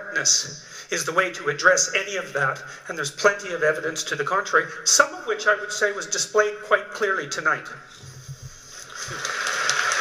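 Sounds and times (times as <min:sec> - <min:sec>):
audience applause through speakers: 0:08.8 - 0:10.0.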